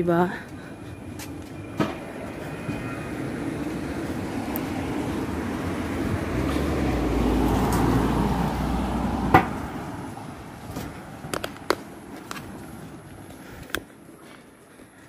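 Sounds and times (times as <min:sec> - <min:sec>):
vehicle passing: 0:00.0 - 0:15.0.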